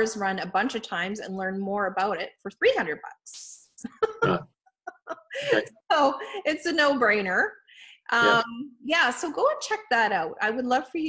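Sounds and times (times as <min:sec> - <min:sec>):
person talking: 0:03.3 - 0:06.2, 0:08.1 - 0:09.0
hesitant uh vocal sound: 0:05.4 - 0:05.7, 0:08.2 - 0:08.6.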